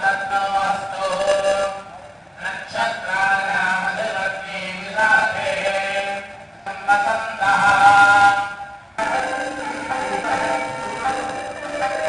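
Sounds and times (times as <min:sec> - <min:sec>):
steady low drone: 0:05.9 - 0:12.0
voices chanting: 0:09.0 - 0:12.0.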